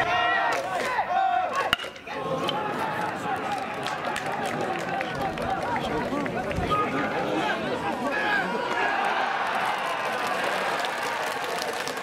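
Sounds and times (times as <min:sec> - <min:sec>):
crowd shouting and chanting: 0:00.0 - 0:10.3
metal bat hitting ball: 0:01.6 - 0:02.6.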